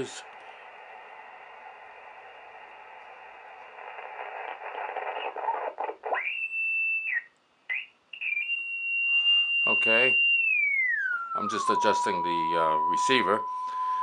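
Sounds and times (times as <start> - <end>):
shortwave receiver hiss: 0.0 - 10.6, 11.3 - 14.0
whistling radio beat note: 3.8 - 14.0.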